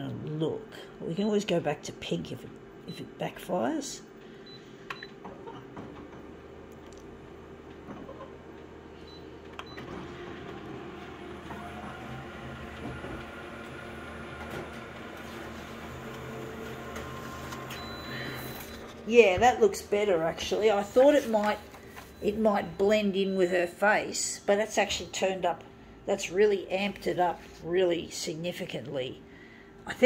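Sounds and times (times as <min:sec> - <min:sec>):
photocopier mechanical hum: 0:00.0 - 0:30.0.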